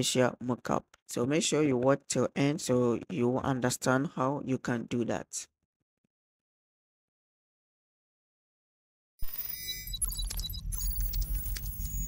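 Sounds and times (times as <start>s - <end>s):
computer keyboard typing: 10.0s - 12.0s.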